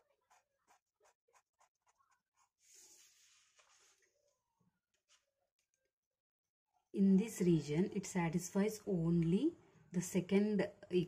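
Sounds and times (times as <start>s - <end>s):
pencil scratching on paper: 0.0s - 4.0s.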